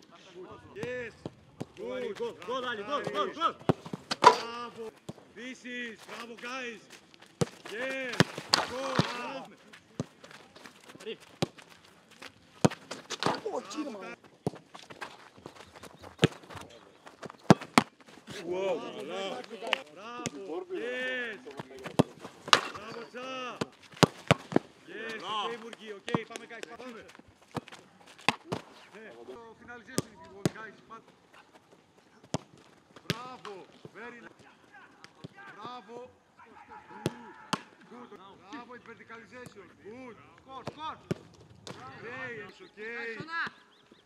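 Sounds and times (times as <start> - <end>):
football kick thuds: 7.4 - 11.7, 12.6 - 13.6, 14.4 - 18.4, 21.6 - 26.7.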